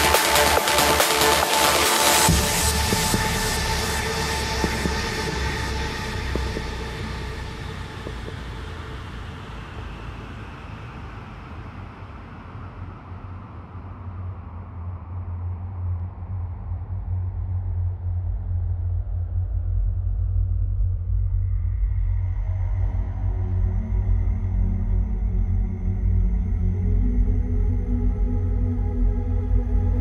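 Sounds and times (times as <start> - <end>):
electronic dance music: 0.0 - 8.6
deep bass rumble: 0.0 - 13.4, 14.8 - 30.0.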